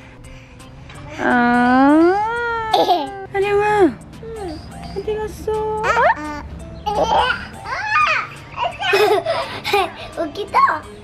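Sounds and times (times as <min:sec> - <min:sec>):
toddler crying out: 0:06.2 - 0:08.8.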